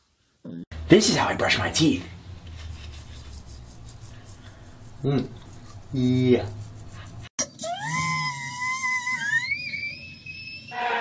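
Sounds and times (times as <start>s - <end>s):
toothbrush scrubbing teeth: 2.5s - 7.3s.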